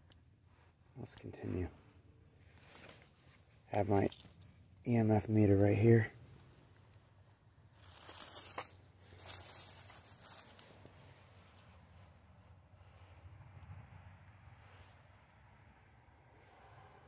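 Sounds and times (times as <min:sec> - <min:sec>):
dry leaves rustling and crunching: 0:07.7 - 0:11.6.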